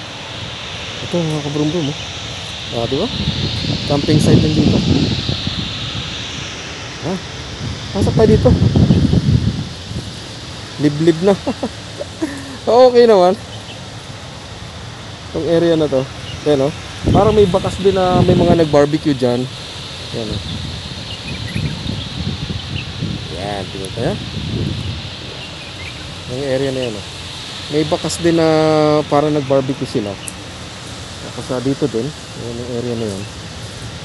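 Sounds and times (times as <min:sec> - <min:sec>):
wind on microphone: 0:00.0 - 0:34.0
faint bird chirps: 0:20.4 - 0:22.9.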